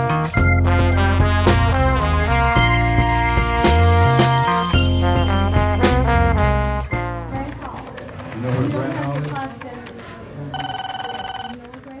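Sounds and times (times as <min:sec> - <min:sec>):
steady electronic beep: 0:00.0 - 0:00.9, 0:02.6 - 0:07.4.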